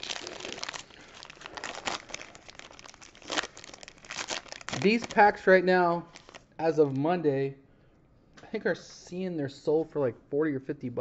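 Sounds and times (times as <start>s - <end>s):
foil wrapper crinkling and tearing: 0.0s - 5.5s, 6.1s - 6.5s.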